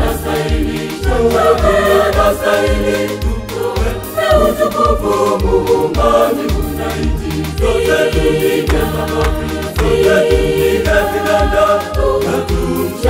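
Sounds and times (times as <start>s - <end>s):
backing track with low beat: 0.0s - 13.0s
gospel choir singing: 0.0s - 13.0s.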